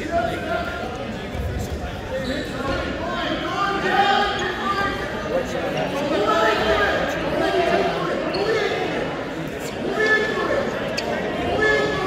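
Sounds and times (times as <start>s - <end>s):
voices calling out echoing: 0.0s - 12.0s.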